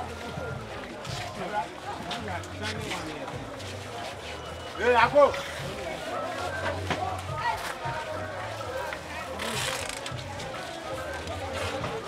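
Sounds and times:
background music: 0.0s - 12.0s
people talking: 0.0s - 12.0s.

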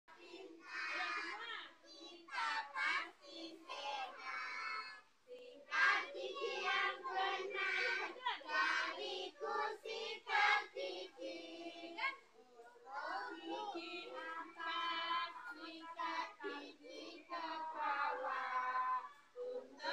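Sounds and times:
children singing together: 0.1s - 12.0s, 12.8s - 19.9s.

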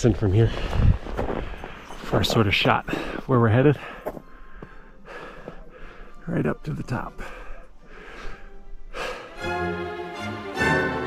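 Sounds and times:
man breathing hard: 2.9s - 6.2s, 7.2s - 9.6s.

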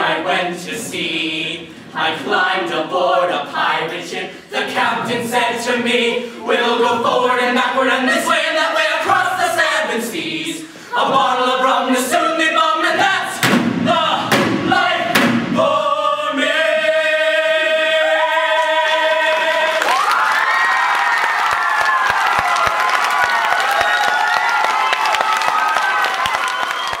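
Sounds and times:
cast singing in chorus: 0.0s - 19.9s
heavy thumps: 13.0s - 15.6s
audience cheering and applauding: 18.0s - 27.0s.

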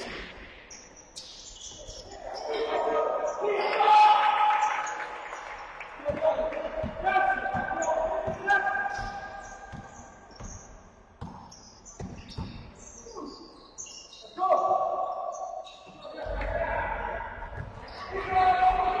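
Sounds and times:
sneakers squeaking: 0.6s - 3.8s, 4.6s - 19.0s
players shouting: 2.1s - 5.2s, 6.0s - 9.6s, 16.0s - 19.0s
basketball dribbling: 6.7s - 12.7s.

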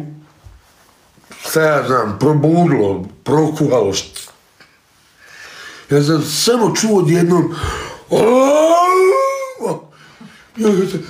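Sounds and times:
man's rising vocal cry: 8.1s - 9.9s.

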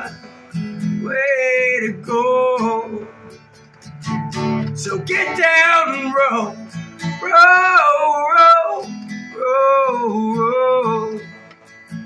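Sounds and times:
acoustic guitar strumming: 0.0s - 12.0s
man singing: 1.0s - 3.2s, 4.7s - 11.3s.

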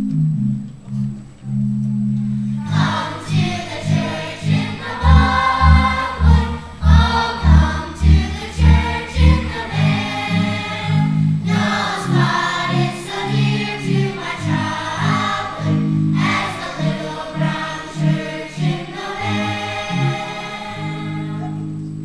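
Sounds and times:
instrumental accompaniment: 0.0s - 22.0s
repeated bass notes: 0.0s - 22.0s
children's choir singing: 2.6s - 21.8s.

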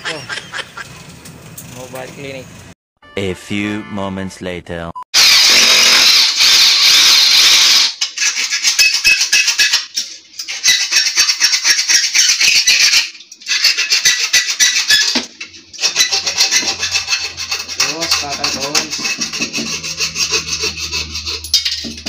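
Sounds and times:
file rasping on metal plate: 8.2s - 22.0s.

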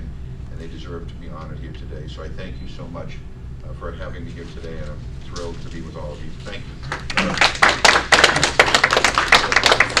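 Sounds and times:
audience applauding: 6.9s - 10.0s.

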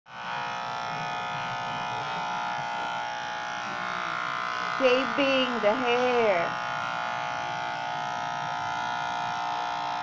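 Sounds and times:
electric pet clipper buzzing: 0.1s - 10.0s.

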